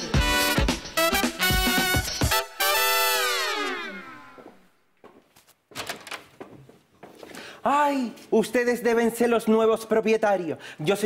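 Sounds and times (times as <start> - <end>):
brassy latin music sting: 0.0 - 4.5.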